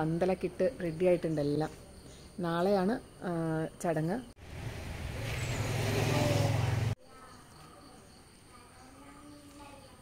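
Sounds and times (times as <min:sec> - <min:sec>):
vehicle engine humming: 0:04.4 - 0:07.0.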